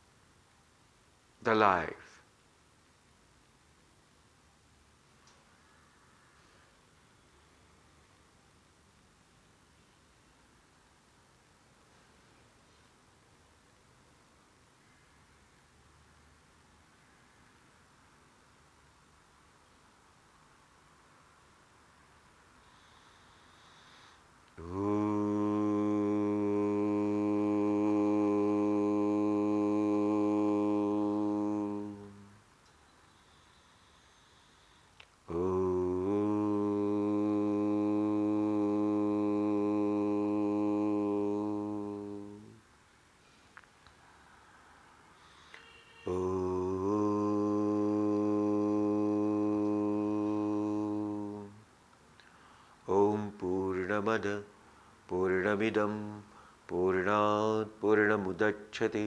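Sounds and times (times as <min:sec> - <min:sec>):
man chanting om: 0:22.8 - 0:32.4, 0:35.2 - 0:42.6, 0:45.4 - 0:51.7, 0:52.8 - 0:59.0.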